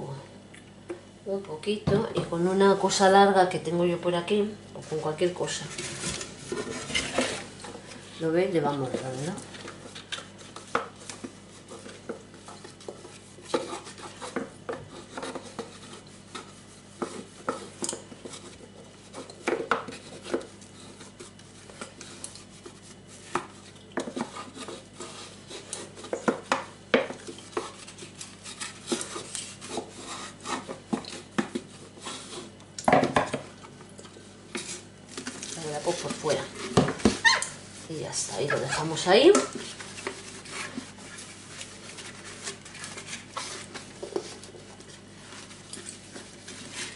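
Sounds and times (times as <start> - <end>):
sponge scrubbing carafe: 2.3 - 32.6, 34.5 - 46.9.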